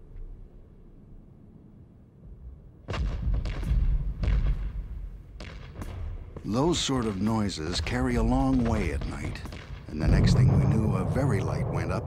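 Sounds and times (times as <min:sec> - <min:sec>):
heavy booms: 0:09.9 - 0:12.0
low rumble: 0:09.9 - 0:12.0.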